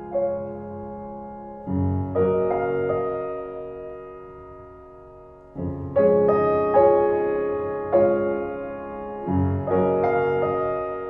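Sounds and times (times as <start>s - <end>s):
slow piano music: 0.0s - 11.0s.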